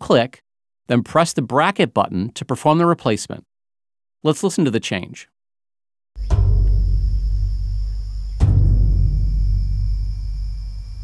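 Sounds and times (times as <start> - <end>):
deep percussive impacts ringing: 6.2 - 11.0
high drone of insects: 6.2 - 11.0.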